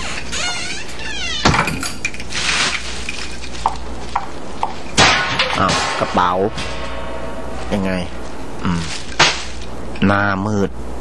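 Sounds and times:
door shutting: 0.0s - 2.0s
plastic bag rustling: 2.3s - 4.2s.

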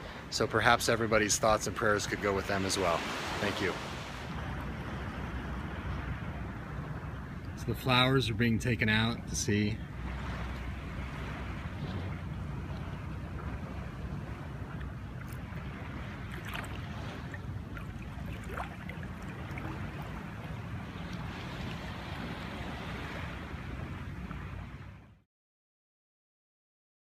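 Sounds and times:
small sea waves lapping: 0.0s - 25.2s
wind buffeting microphone: 2.9s - 25.1s.

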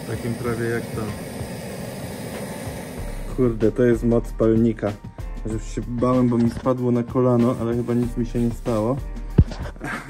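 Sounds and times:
gas torch hissing: 0.0s - 10.0s.

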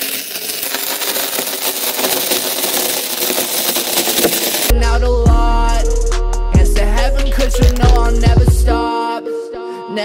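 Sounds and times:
masking tape pulled off roll: 0.0s - 4.7s, 7.3s - 8.1s
hip-hop beat with heavy bass: 4.7s - 9.0s.

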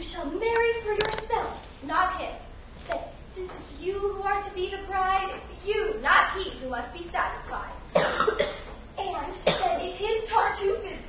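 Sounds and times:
woman speaking: 0.0s - 7.9s, 9.0s - 11.0s
person coughing: 7.9s - 8.7s, 9.4s - 9.9s.

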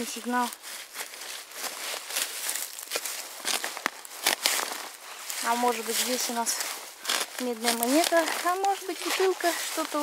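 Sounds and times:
footsteps crunching in dry leaves: 0.0s - 10.0s
twigs cracking: 0.0s - 10.0s.

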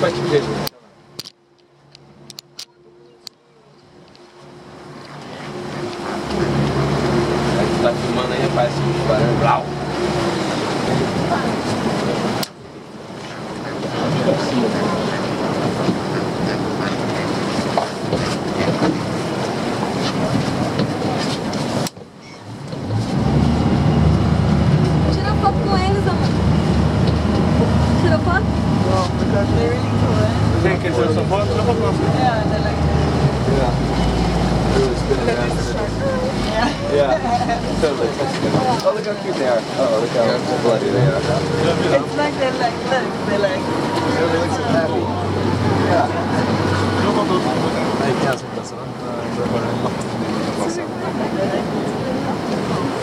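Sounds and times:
boat engine drone: 0.0s - 53.0s
wind and sea rushing: 0.0s - 53.0s
faint voices: 2.4s - 12.4s, 13.0s - 22.6s, 24.9s - 53.0s.

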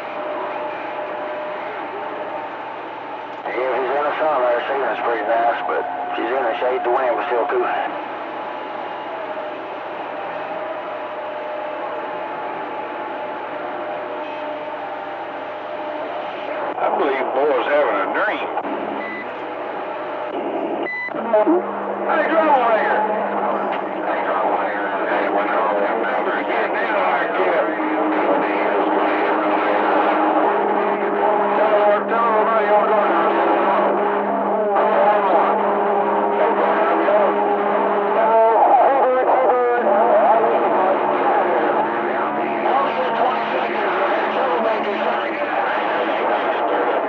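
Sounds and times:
garbled radio transmissions: 0.0s - 47.0s.

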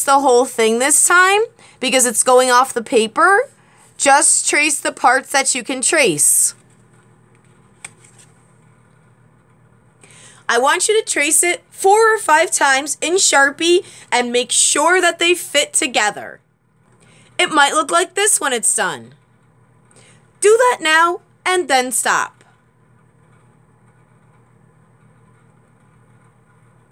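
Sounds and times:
low room hum: 0.0s - 26.9s
paper handling: 6.6s - 8.5s.

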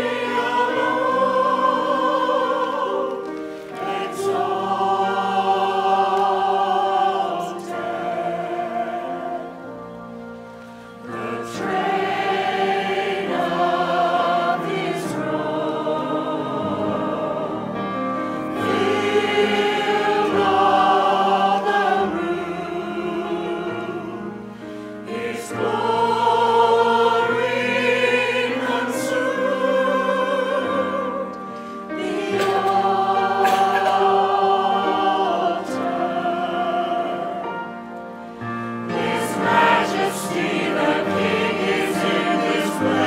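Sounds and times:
choir singing: 0.0s - 43.0s
piano accompaniment: 0.0s - 43.0s.

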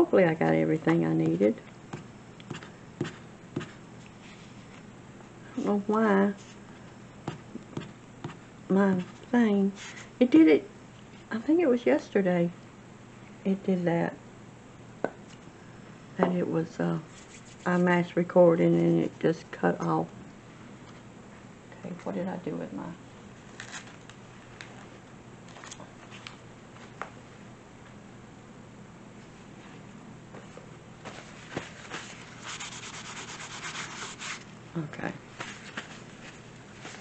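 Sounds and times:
paper rubbing on paper card: 17.1s - 17.8s, 32.0s - 34.5s.

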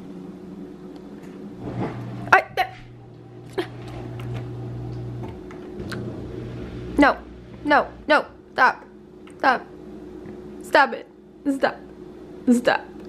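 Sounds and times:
dishwasher motor humming: 0.0s - 12.0s.

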